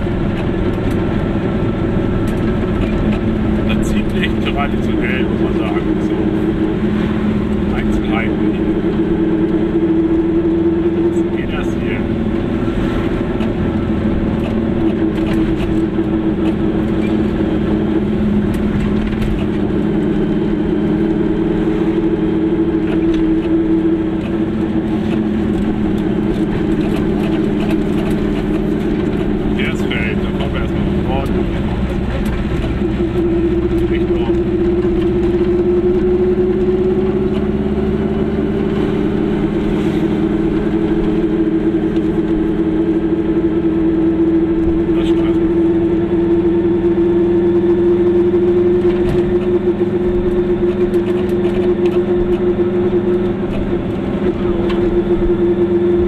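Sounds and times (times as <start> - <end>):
car engine droning: 0.0 - 56.0.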